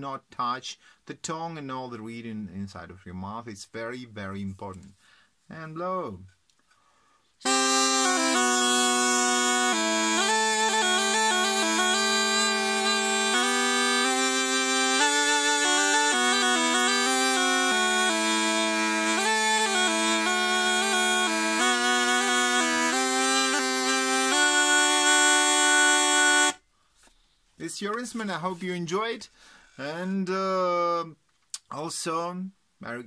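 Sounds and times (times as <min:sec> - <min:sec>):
double-piped reed instrument melody: 0:07.4 - 0:26.6.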